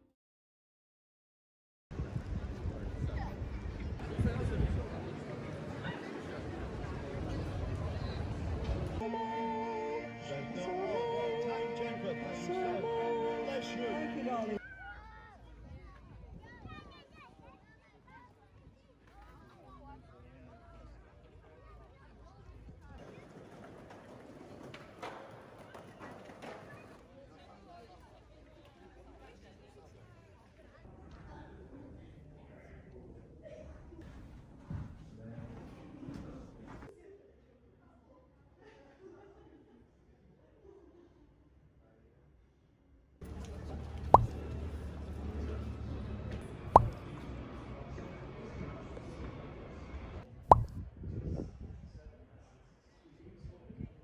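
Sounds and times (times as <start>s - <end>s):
voices of people outdoors: 2.0s - 34.2s, 43.2s - 54.0s
rising pop sound effect: 44.1s - 44.4s, 46.8s - 47.0s, 50.5s - 50.7s.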